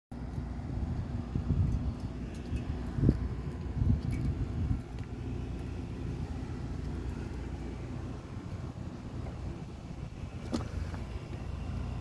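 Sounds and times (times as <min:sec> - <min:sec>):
air conditioning units humming: 0:00.1 - 0:12.0
wind rumbling on microphone: 0:00.2 - 0:12.0.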